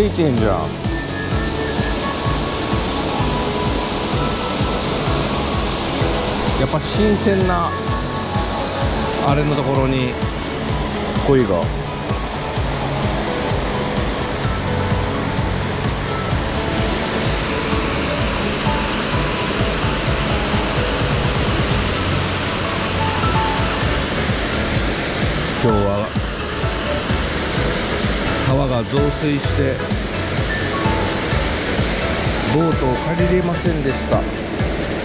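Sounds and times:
background music: 0.0 - 35.0
waterfall pouring into pool: 0.0 - 35.0.

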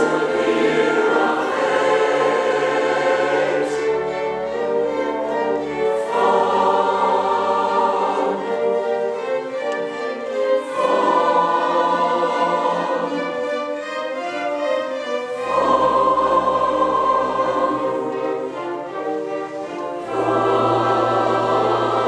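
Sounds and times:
choir singing: 0.0 - 22.0
string orchestra: 0.0 - 22.0.

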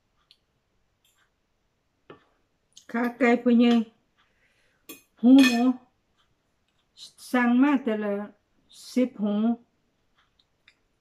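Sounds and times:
fork clinking against plate: 4.9 - 5.7.

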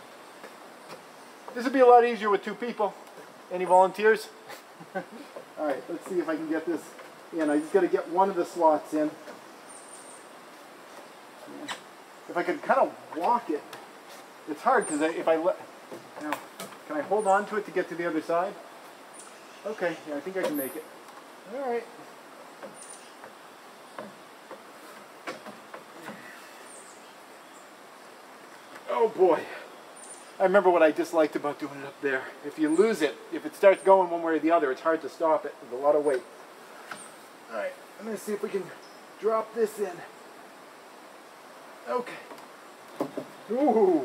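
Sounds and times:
outdoor background hiss: 0.0 - 44.0
wooden knocks and clicks: 24.0 - 26.2, 42.3 - 43.4.

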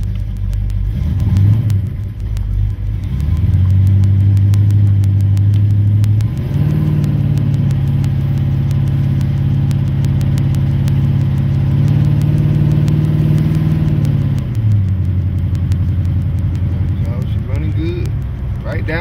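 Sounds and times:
car engine while driving: 0.0 - 19.0.

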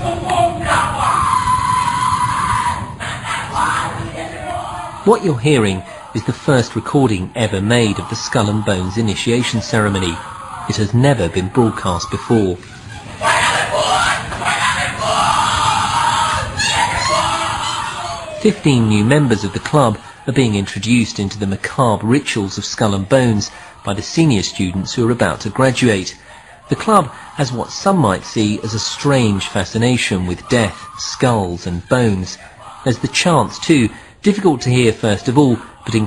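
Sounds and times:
long drawn-out cry: 0.0 - 20.8, 23.0 - 36.0
voices shouting and yelling: 0.0 - 36.0.

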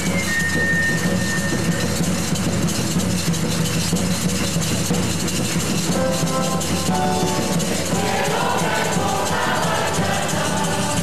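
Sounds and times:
high flute-like melody: 0.0 - 2.2
live choir and band music: 0.0 - 3.9, 4.5 - 11.0.

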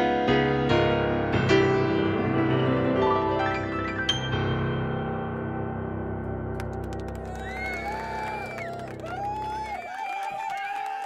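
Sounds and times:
piano chord ringing: 0.0 - 7.2.

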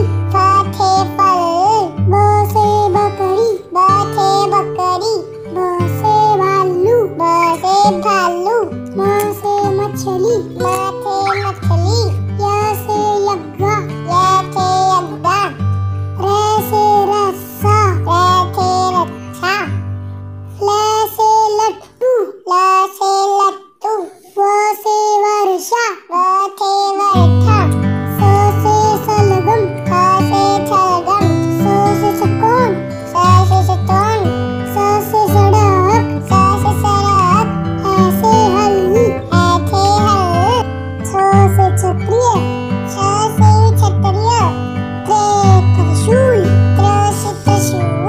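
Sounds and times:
high voice singing: 0.0 - 19.9, 20.6 - 48.0
instrumental backing: 27.2 - 48.0.

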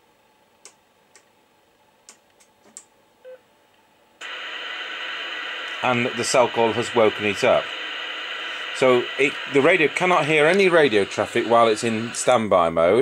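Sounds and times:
radio static hiss: 4.2 - 13.0.

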